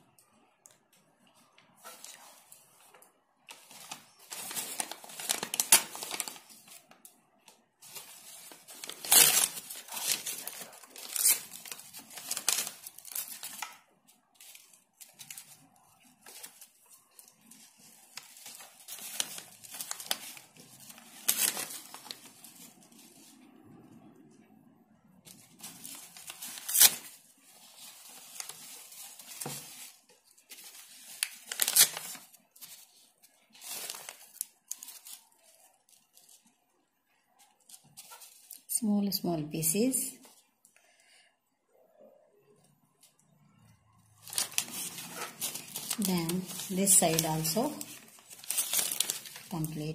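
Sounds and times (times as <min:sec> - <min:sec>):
paper crinkling: 0:01.3 - 0:23.5, 0:25.2 - 0:36.6, 0:37.4 - 0:38.7, 0:44.1 - 0:49.9
paper ripping: 0:03.6 - 0:06.9, 0:07.8 - 0:13.7, 0:18.1 - 0:23.3, 0:25.3 - 0:32.8, 0:33.5 - 0:35.2, 0:44.2 - 0:49.8.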